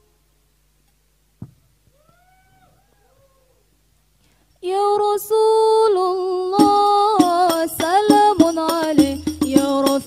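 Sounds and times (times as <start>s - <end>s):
solo voice singing unaccompanied: 4.6s - 10.0s.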